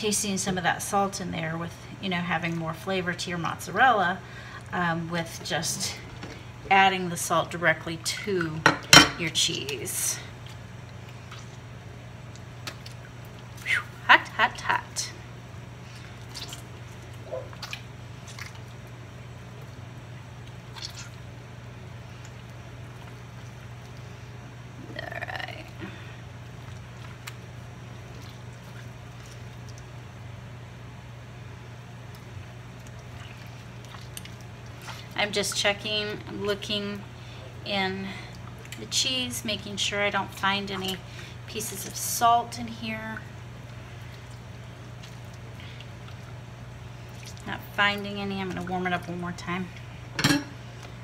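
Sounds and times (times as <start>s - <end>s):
steady low hum: 0.0s - 51.0s
wet squishing of curd: 9.4s - 14.4s, 15.6s - 30.3s, 31.3s - 51.0s.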